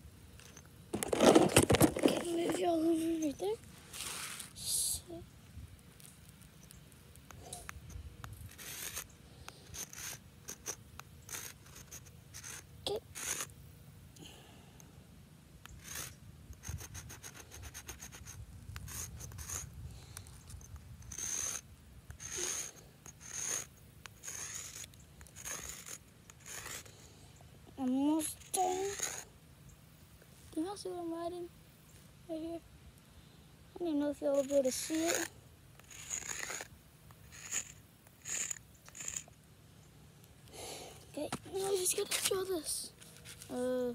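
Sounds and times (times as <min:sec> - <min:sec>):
chalk scraping on concrete: 0:02.0 - 0:04.7, 0:08.5 - 0:13.5, 0:15.7 - 0:19.8, 0:20.5 - 0:21.6, 0:22.2 - 0:27.0, 0:27.8 - 0:29.3, 0:33.9 - 0:39.4, 0:41.2 - 0:43.6.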